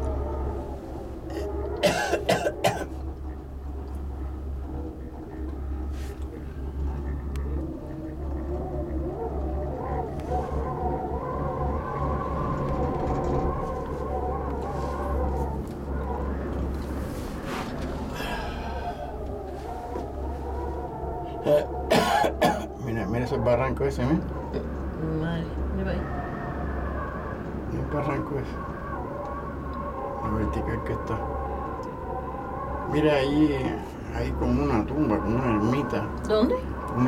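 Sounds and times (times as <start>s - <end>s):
cable car cabin rumble: 0.0s - 37.0s
person coughing: 1.3s - 2.9s, 21.5s - 22.7s.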